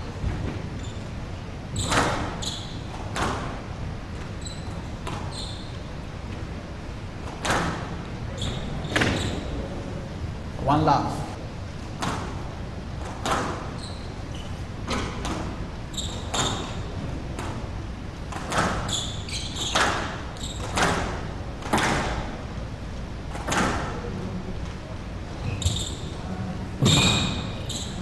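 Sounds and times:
shoes squeaking on court floor: 0:00.5 - 0:03.4, 0:04.2 - 0:05.9, 0:07.4 - 0:09.6, 0:13.1 - 0:17.5, 0:18.4 - 0:21.1, 0:25.4 - 0:28.0.

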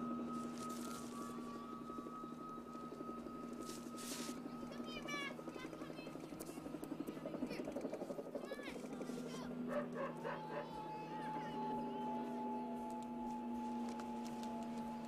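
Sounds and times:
outdoor ambience: 0:00.0 - 0:15.0
steady held music tone: 0:00.0 - 0:15.0
distant dog barks: 0:09.6 - 0:10.8.

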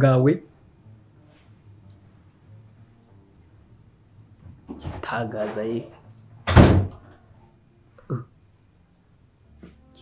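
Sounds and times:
door slamming shut: 0:06.4 - 0:07.1.

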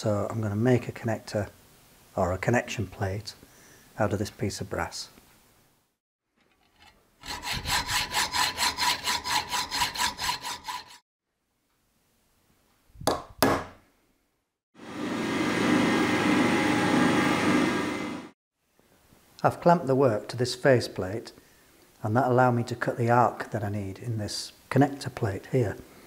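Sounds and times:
hacksaw cutting metal plate: 0:06.6 - 0:11.0.

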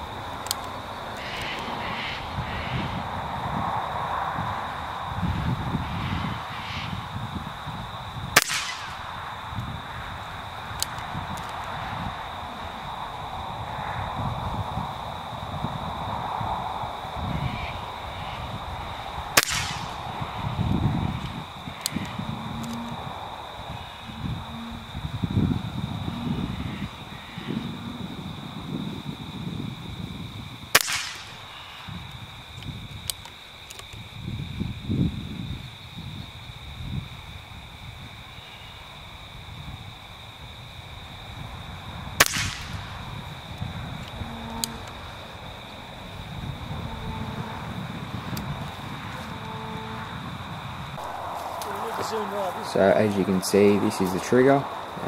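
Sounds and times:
air rifle shots: 0:08.4 - 0:09.2, 0:19.3 - 0:20.3, 0:30.7 - 0:31.6, 0:42.2 - 0:43.0.

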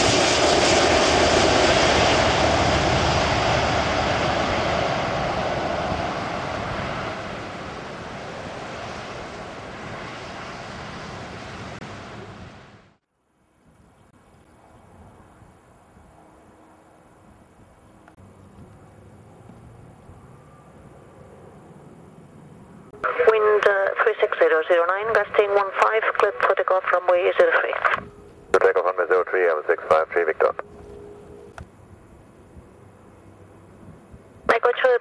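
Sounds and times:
distant jet engines rumbling: 0:00.0 - 0:35.0.

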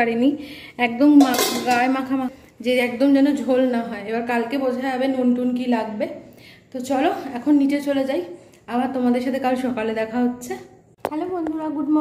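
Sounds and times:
woman talking: 0:00.0 - 0:12.0
metal cookware clattering: 0:01.0 - 0:02.3.

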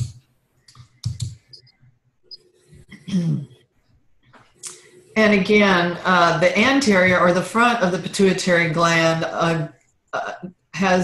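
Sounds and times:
computer clicks: 0:00.0 - 0:01.7.

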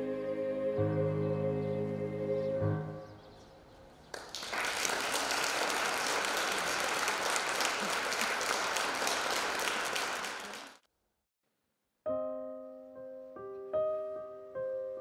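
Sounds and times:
audience applauding: 0:04.1 - 0:10.8.

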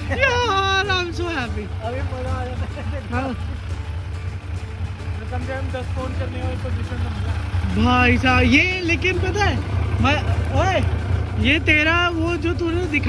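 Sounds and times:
faint voices talking: 0:00.0 - 0:13.0.

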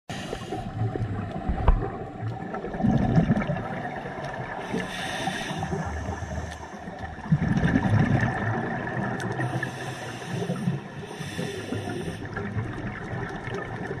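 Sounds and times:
exhaled bubbles underwater: 0:00.1 - 0:14.0
hissing regulator inhalations: 0:04.6 - 0:07.0, 0:09.4 - 0:12.4.

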